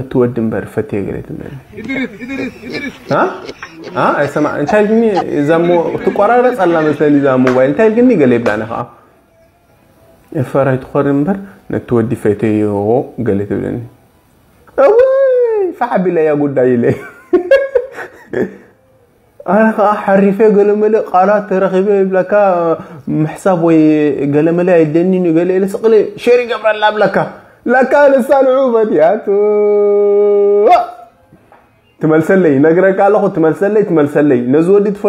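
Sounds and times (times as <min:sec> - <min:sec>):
high drawn-out howling cry: 0:01.6 - 0:07.3.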